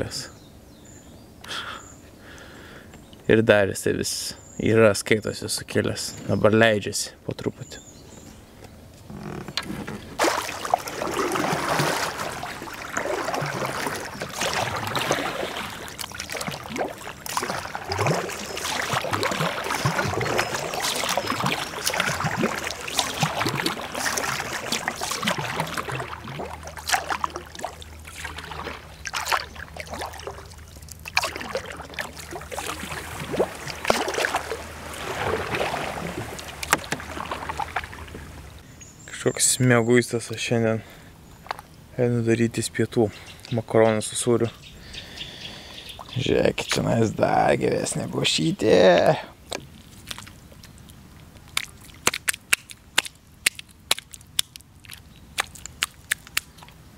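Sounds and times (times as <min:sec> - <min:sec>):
water sloshing against hull: 0:08.1 - 0:38.8, 0:49.2 - 0:56.9
paddle pulling through water: 0:09.1 - 0:38.6.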